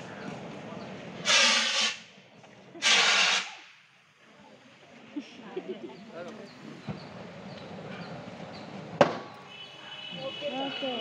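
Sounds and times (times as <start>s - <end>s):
fire extinguisher hissing bursts: 1.2s - 2.1s, 2.8s - 3.7s.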